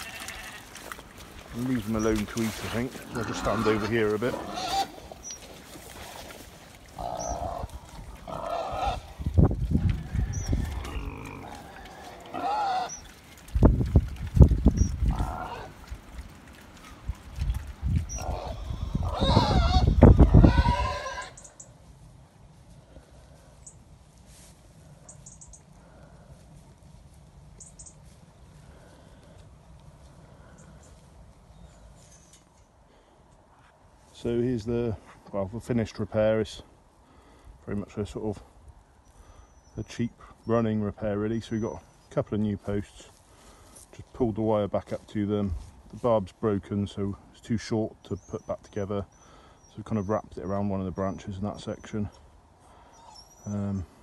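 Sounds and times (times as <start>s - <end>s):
pigs grunting: 1.5s - 13.4s, 15.0s - 15.9s, 18.1s - 21.4s
wind buffeting microphone: 7.2s - 11.3s, 13.4s - 16.3s, 17.0s - 21.0s.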